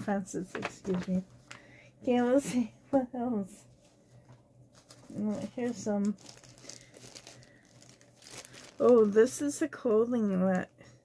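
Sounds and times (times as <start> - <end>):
plastic bag crinkling: 4.7 - 9.6.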